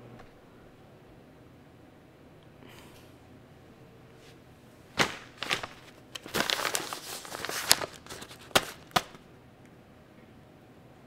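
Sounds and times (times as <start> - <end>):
paper envelope crinkling: 5.0 - 9.2
sharp paper snaps: 5.0 - 9.2.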